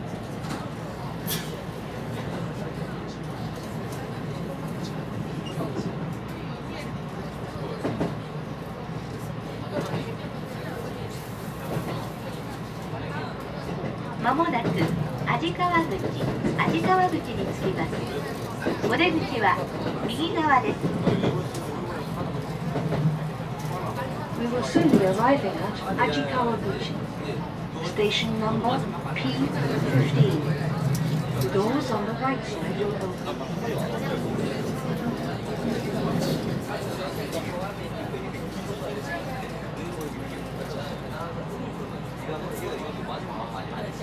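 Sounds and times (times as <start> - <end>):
electric train rumbling: 0.0 - 39.7
voices: 0.2 - 44.0.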